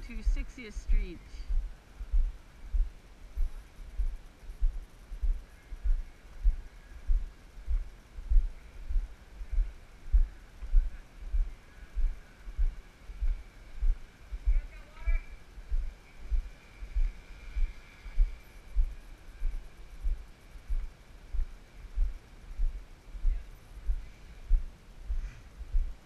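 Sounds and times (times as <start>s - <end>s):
faint high whine: 0.0s - 26.0s.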